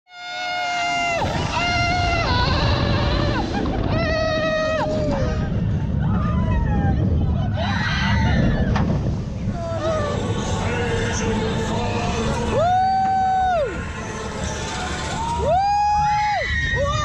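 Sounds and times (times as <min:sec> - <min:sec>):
wind: 0:00.1 - 0:17.0
riders screaming and whooping: 0:00.2 - 0:08.8, 0:09.5 - 0:11.4, 0:12.2 - 0:17.0
roller coaster rumbling: 0:00.4 - 0:17.0.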